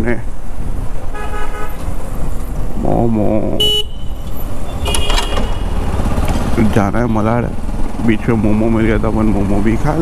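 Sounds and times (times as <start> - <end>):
motorcycle engine: 1.0 - 10.0
vehicle horn honking: 1.1 - 1.8, 3.6 - 5.9.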